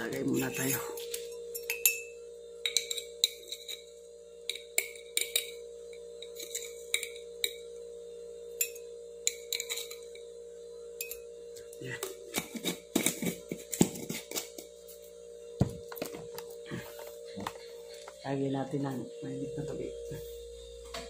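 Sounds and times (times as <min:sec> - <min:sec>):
metal spoon scraping glass jar: 0:00.0 - 0:02.0, 0:02.6 - 0:03.9, 0:06.2 - 0:07.6, 0:08.6 - 0:10.2.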